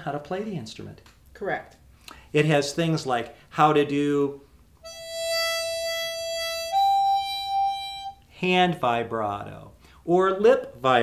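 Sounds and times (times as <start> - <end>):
harmonica holding notes with vibrato: 4.8 - 8.3.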